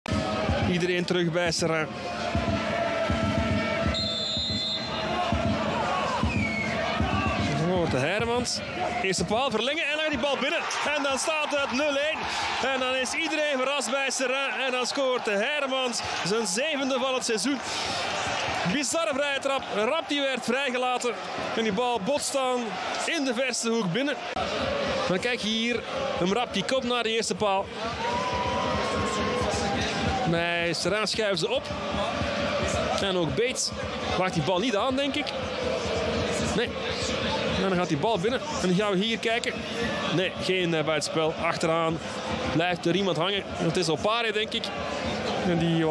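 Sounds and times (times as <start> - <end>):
stadium crowd chanting: 1.9 - 7.7, 9.8 - 26.8, 30.9 - 34.4, 35.2 - 38.6
low drum beat: 2.3 - 8.6
referee's whistle: 3.5 - 5.2, 6.2 - 7.4.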